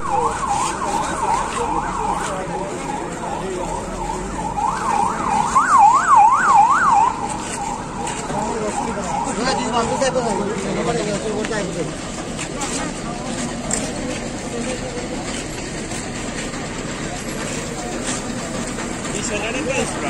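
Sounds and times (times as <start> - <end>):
electronic siren sweeping: 0.0 - 11.2.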